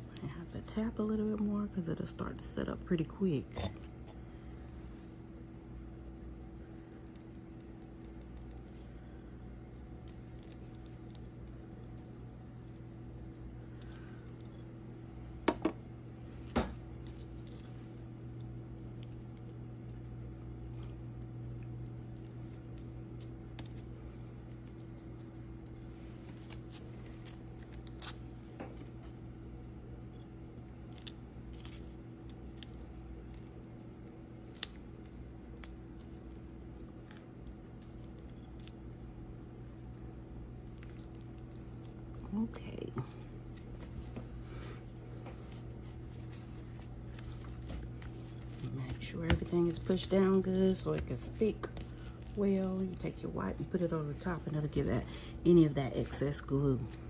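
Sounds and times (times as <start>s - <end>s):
low hum: 0.0s - 57.0s.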